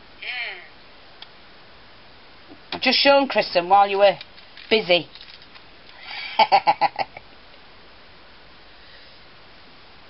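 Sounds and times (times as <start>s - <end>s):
woman laughing: 6.0s - 7.2s.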